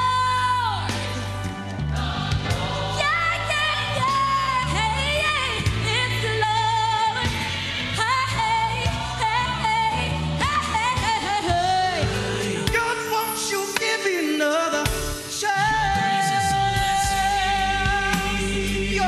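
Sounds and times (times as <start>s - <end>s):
person singing gospel: 0.0s - 19.0s
sustained bass notes: 14.9s - 19.0s.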